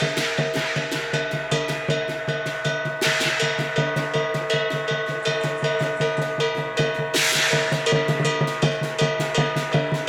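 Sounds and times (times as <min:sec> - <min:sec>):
clashing cymbals: 0:00.0 - 0:10.0
drum beating steadily: 0:00.0 - 0:10.0
ringing gong: 0:00.0 - 0:10.0.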